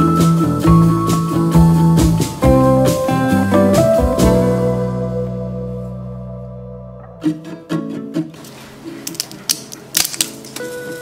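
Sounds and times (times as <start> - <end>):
tortilla chip snapping: 9.0 - 10.8.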